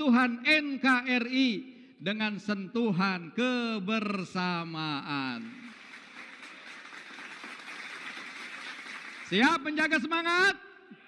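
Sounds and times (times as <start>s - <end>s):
audience applauding: 5.4s - 9.6s.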